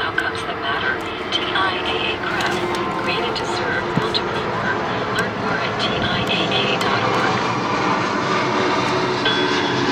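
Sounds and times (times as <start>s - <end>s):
engine running: 0.0s - 9.9s
faint radio talk: 0.1s - 7.4s.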